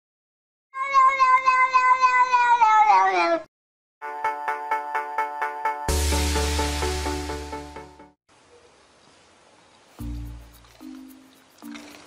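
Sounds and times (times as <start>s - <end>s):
cat meowing: 0.8s - 3.5s.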